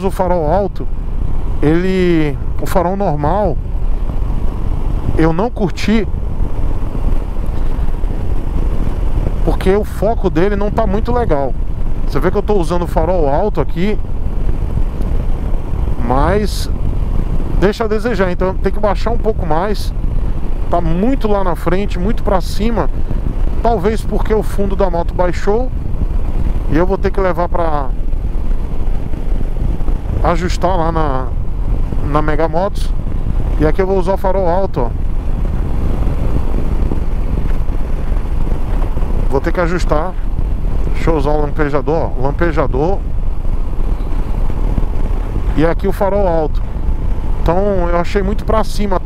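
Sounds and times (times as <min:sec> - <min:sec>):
motorcycle engine rumble: 0:00.0 - 0:49.0
wind on microphone: 0:00.0 - 0:49.0.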